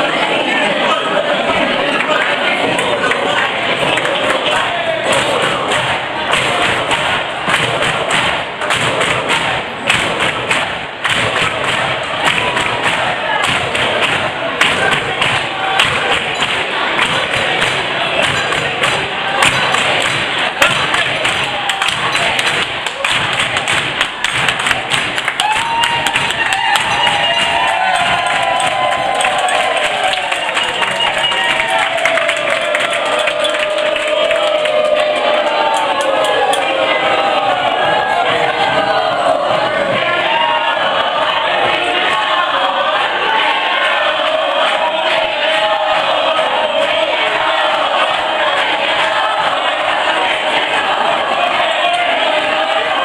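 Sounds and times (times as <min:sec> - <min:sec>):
people singing together: 0:00.0 - 0:25.1, 0:26.2 - 0:53.0
people clapping along: 0:01.8 - 0:53.0
people shouting: 0:02.7 - 0:53.0.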